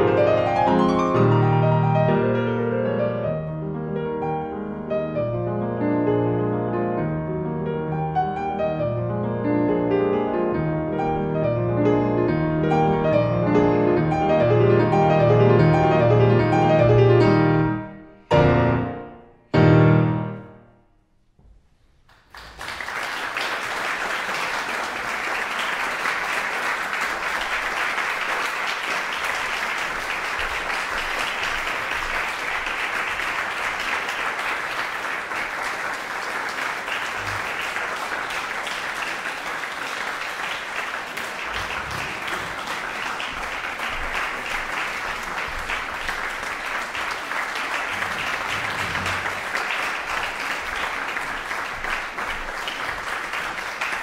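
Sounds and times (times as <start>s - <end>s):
audience applauding: 22.1s - 54.0s.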